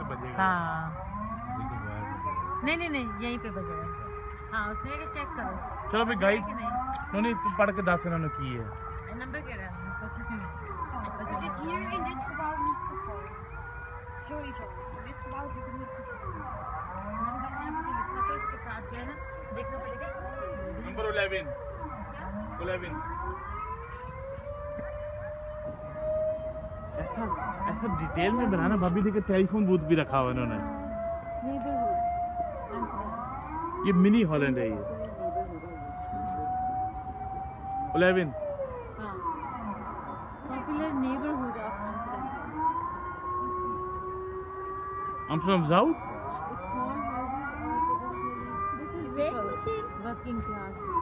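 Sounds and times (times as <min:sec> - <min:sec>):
warning siren wailing: 0:00.0 - 0:51.0.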